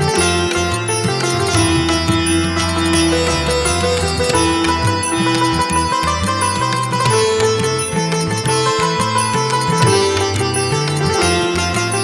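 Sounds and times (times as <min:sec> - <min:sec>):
instrumental devotional music: 0:00.0 - 0:12.0.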